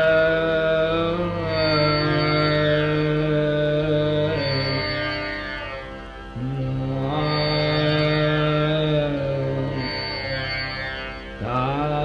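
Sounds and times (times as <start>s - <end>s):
man singing long sliding notes: 0.0s - 12.0s
steady drone: 0.0s - 12.0s.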